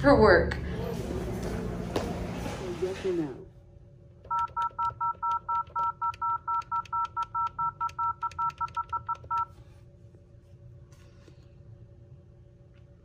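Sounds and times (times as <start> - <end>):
touch-tone keypad beeps: 4.3 - 9.5.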